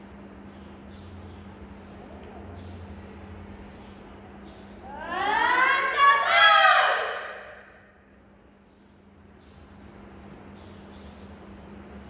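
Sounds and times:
boy shouting: 4.9s - 7.6s.

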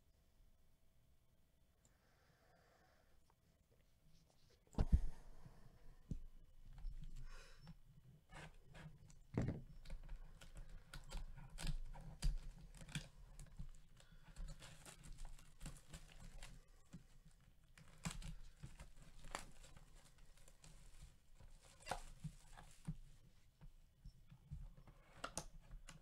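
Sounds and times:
plastic wrap tearing and crinkling: 17.8s - 21.0s.

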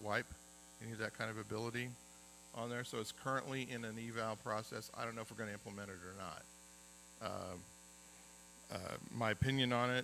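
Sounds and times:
man saying uh: 0.0s - 2.0s, 2.6s - 6.4s, 7.2s - 7.7s, 8.7s - 10.0s
electrical mains hum: 0.0s - 10.0s.

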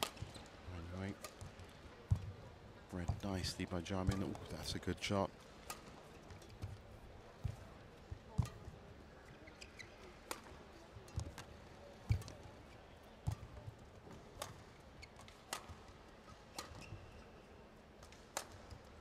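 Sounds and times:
shoes squeaking: 9.3s - 10.1s, 16.5s - 17.2s
racket striking shuttlecock: 10.3s - 10.5s, 15.2s - 15.8s, 18.1s - 18.6s.

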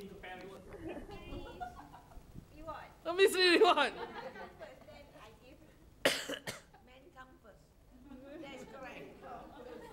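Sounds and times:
person coughing: 6.0s - 6.7s.

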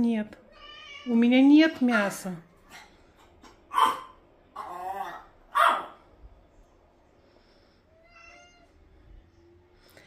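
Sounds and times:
pets crying: 1.8s - 6.0s.

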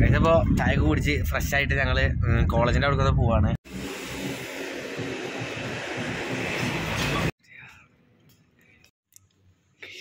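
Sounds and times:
traffic hiss and rumble: 3.7s - 7.3s.

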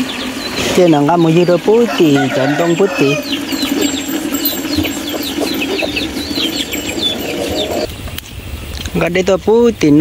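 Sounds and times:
chickens chirping: 0.0s - 8.2s.

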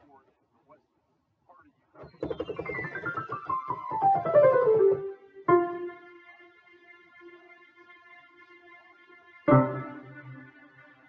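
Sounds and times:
descending keyboard run: 2.0s - 5.6s
low repeated keyboard notes: 2.4s - 7.6s, 9.4s - 11.0s.

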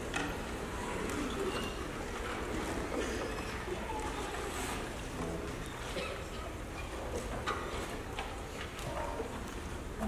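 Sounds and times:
audience room noise hiss: 0.0s - 10.0s.

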